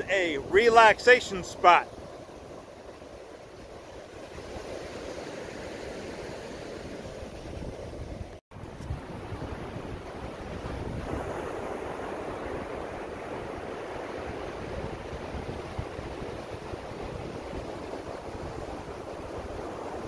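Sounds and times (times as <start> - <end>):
ocean surf breaking on beach: 0.0 - 20.0
wind buffeting microphone: 7.1 - 20.0.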